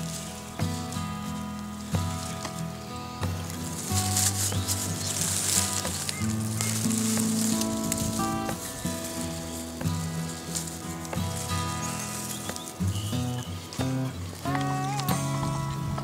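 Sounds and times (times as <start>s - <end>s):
music of held notes: 0.0s - 16.0s
steady high hiss: 0.0s - 16.0s.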